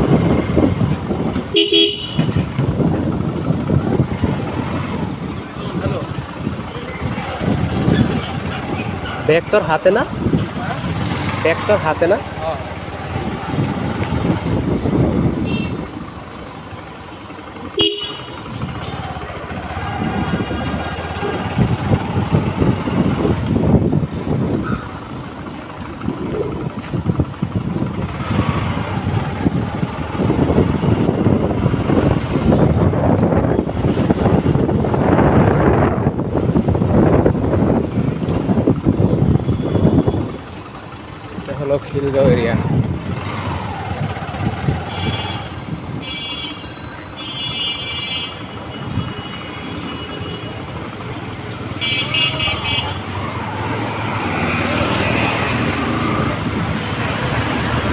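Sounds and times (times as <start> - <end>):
wind buffeting microphone: 0.0 - 9.3, 13.1 - 16.0, 19.9 - 25.0, 25.9 - 40.4, 42.4 - 46.0
vehicle horn toot: 1.5 - 2.3, 15.4 - 15.9, 17.8 - 18.4, 44.8 - 50.6, 51.8 - 53.0
motorcycle engine running: 10.1 - 46.0.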